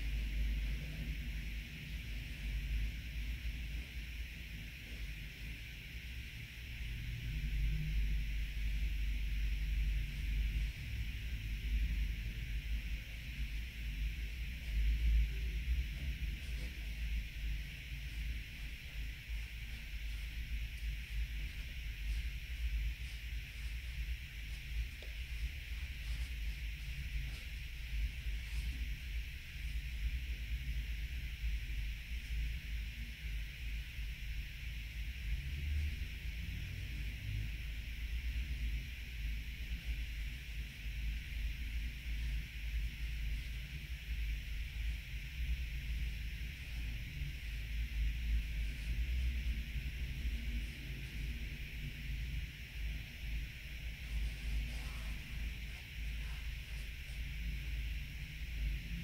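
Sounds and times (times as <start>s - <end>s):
low uneven rumble: 0.0s - 33.0s, 39.7s - 59.0s
steady background hiss: 0.0s - 59.0s.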